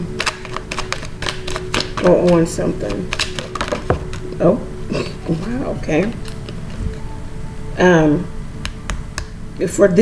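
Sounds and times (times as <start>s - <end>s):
cards being shuffled: 0.1s - 4.4s, 5.3s - 7.0s.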